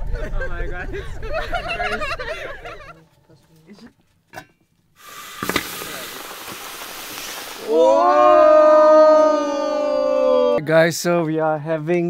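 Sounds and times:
hot stones sizzling in liquid: 5.0 - 8.5.

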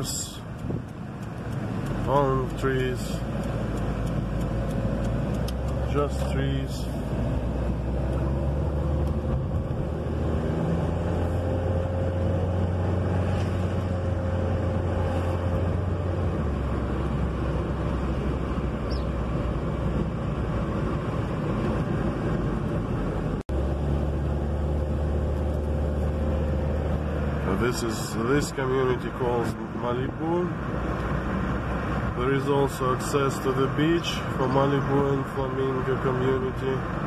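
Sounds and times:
car road noise in cabin: 0.0 - 37.0.

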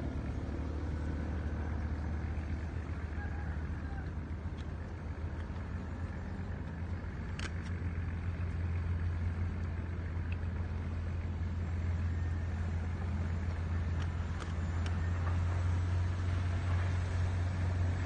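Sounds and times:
distant boat engine drone: 0.0 - 18.0.

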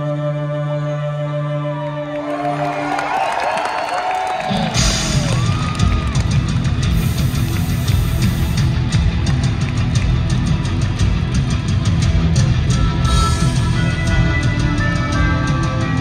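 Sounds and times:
live heavy rock band: 4.3 - 16.0
distorted electric guitars: 4.4 - 16.0.

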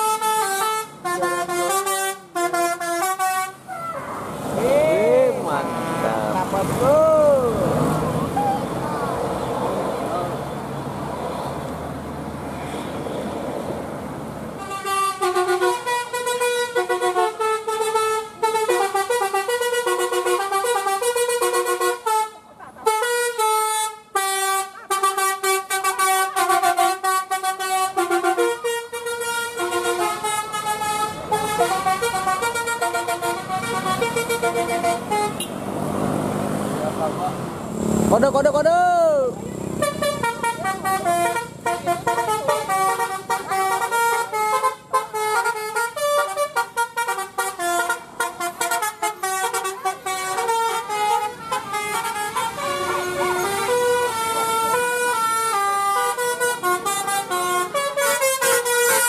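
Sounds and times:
multi-tone bus horns playing tunes: 0.0 - 4.0, 5.0 - 7.0, 14.5 - 35.7, 39.7 - 59.0.

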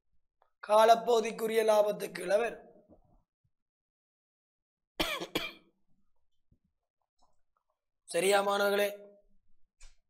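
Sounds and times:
man coughing: 5.0 - 5.7.

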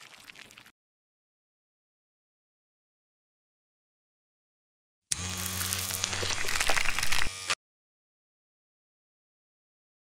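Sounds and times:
electric hair clipper buzzing: 5.1 - 7.6.

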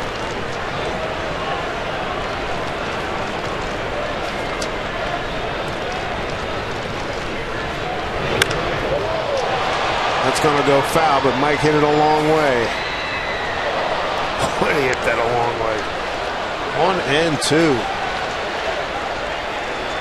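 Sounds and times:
crowd murmur: 0.0 - 11.6, 12.3 - 20.0.

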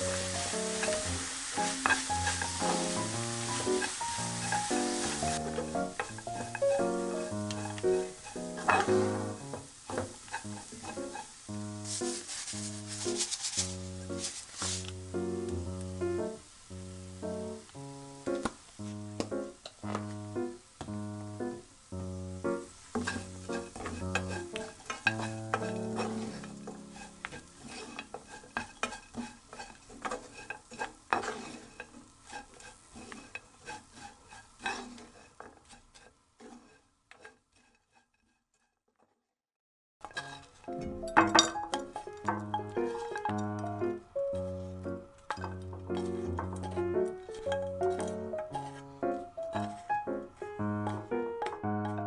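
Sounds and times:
wooden spatula scraping a pan: 0.0 - 15.3, 18.3 - 20.4, 22.4 - 39.1, 40.0 - 52.0
light guitar music: 40.7 - 52.0.

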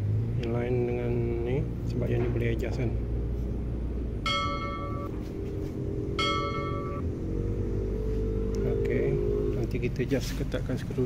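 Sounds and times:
low background rumble: 0.0 - 7.7
bright bell dings: 4.3 - 5.2, 6.2 - 7.0.

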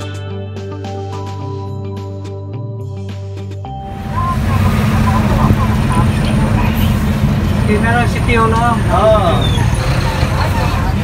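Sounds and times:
road noise: 3.7 - 11.0
vehicle engine rumble: 3.7 - 11.0
faint voices: 4.3 - 11.0.

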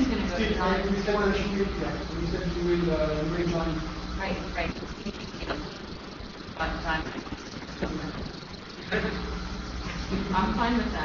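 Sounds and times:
low hum: 0.0 - 11.0
steady hiss: 0.0 - 11.0.

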